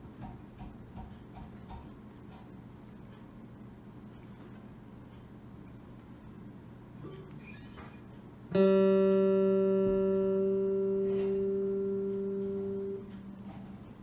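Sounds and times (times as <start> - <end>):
guitar string plucked: 8.5 - 13.6.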